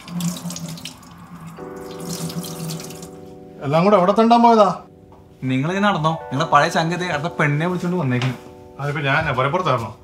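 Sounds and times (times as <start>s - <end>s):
water running into a steel sink: 0.0s - 3.1s
higher steady chord: 0.8s - 10.0s.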